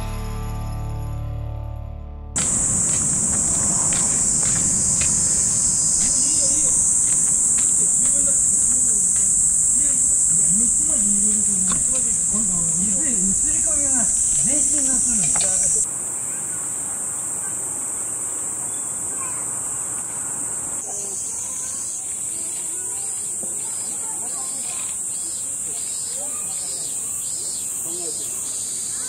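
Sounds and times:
insects droning: 0:02.4 - 0:29.0
people's voices: 0:02.4 - 0:29.0.

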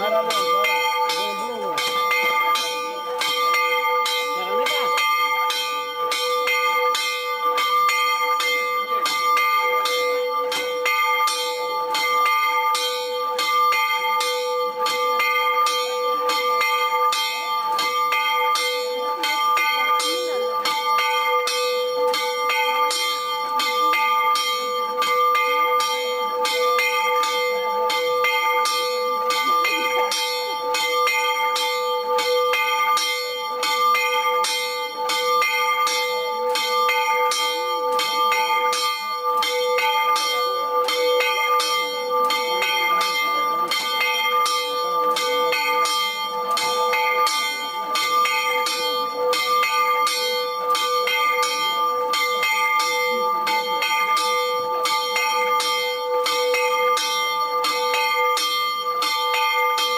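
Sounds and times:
church bell ringing fast: 0:00.0 - 0:59.9.

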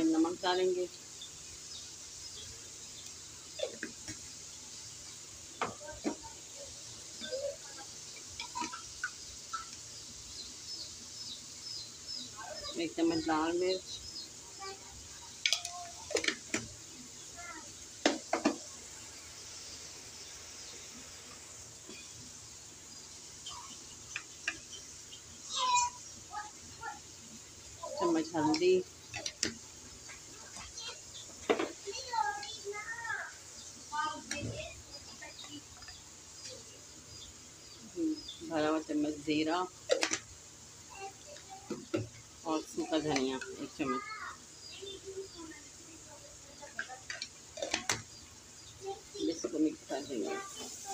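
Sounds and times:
faint steady hiss: 0:00.0 - 0:50.9.

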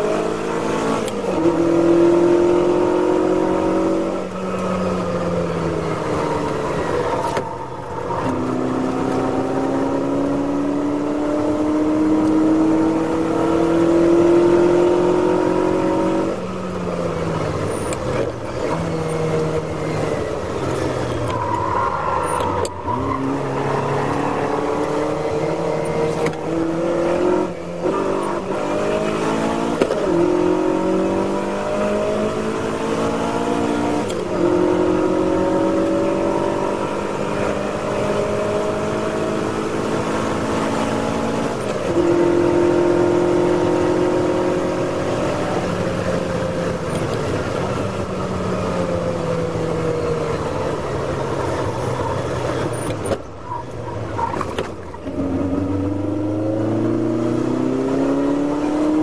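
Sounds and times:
racing car engine revving: 0:00.0 - 0:59.0.

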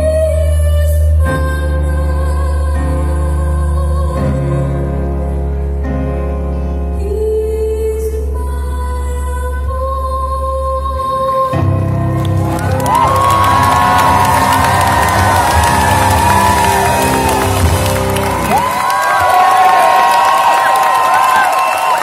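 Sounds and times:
crowd cheering and applauding: 0:11.8 - 0:22.0.

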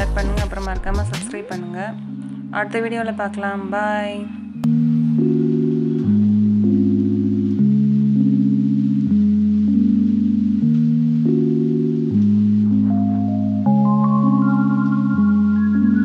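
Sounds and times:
slow sustained low chords: 0:03.8 - 0:16.0.

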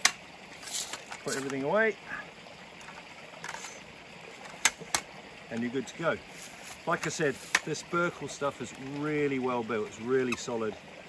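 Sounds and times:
sampling pole clicks and rattles: 0:04.4 - 0:05.7, 0:06.8 - 0:07.8.

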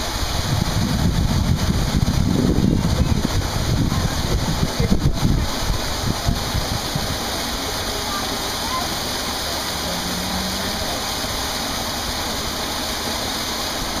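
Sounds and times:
running water rushing: 0:00.0 - 0:14.0.

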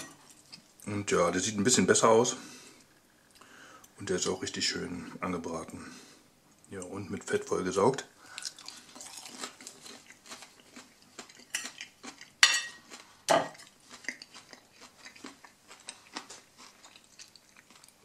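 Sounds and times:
chewing crunchy breaded food: 0:08.2 - 0:18.0
knife clinking on plate: 0:12.4 - 0:13.6.

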